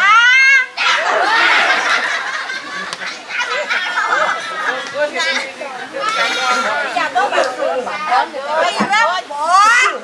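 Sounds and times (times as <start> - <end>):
women calling out and chattering: 3.2 - 10.0.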